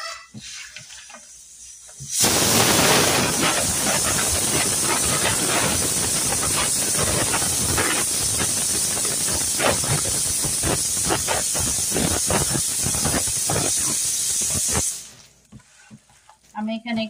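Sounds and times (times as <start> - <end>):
steady hiss: 0.3 - 15.4.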